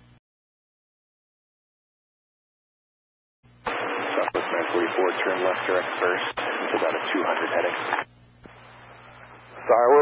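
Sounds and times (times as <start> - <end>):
radio channel hiss: 3.6 - 10.0
voice over tinny radio: 4.0 - 8.0.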